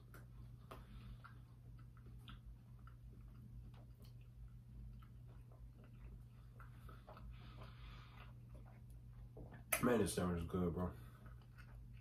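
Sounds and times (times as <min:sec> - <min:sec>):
low steady hum: 0:00.0 - 0:12.0
person chewing a sandwich: 0:00.0 - 0:12.0.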